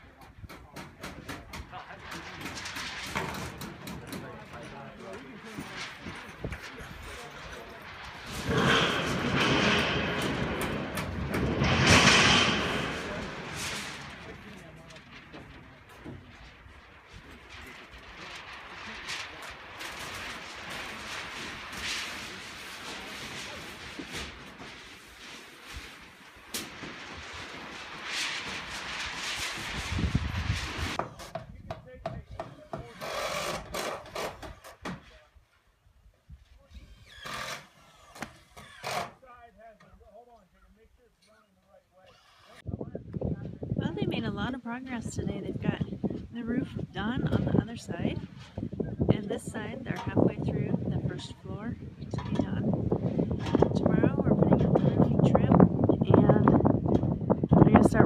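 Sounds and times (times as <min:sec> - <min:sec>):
steel roofing panel rattling: 0:00.6 - 0:35.0
steady rushing noise: 0:01.6 - 0:31.0.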